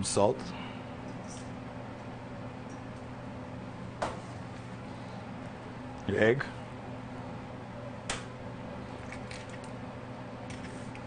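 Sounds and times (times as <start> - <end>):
low hum of kitchen equipment: 0.0 - 11.0.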